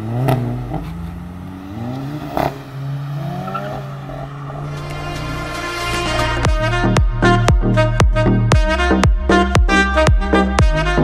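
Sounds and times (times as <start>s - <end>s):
car engine accelerating: 0.0s - 8.2s.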